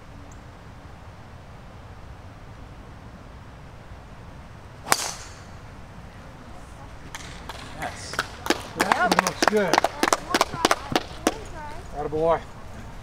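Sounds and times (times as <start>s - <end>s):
golf club striking ball: 4.8s - 5.7s, 7.1s - 9.1s.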